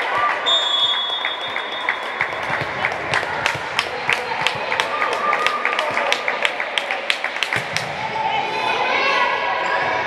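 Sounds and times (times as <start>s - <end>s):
rhythmic hand clapping: 1.2s - 7.9s.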